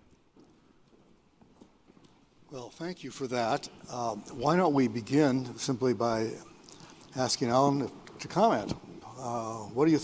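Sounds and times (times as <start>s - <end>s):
faint footsteps on stage: 0.0s - 2.5s.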